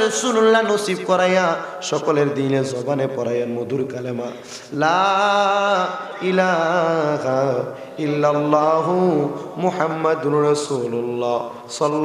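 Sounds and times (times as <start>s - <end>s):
man chanting over loudspeaker: 0.0s - 12.0s.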